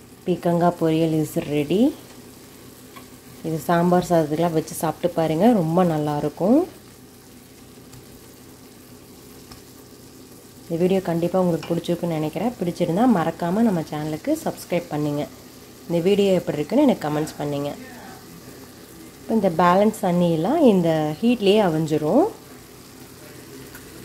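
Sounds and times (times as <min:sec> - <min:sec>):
vegetables sizzling in a pan: 0:00.0 - 0:24.0.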